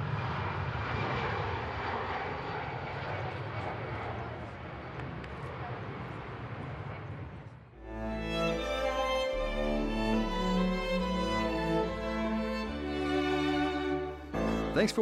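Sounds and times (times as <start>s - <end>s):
jet airliner taking off: 0.0s - 15.0s.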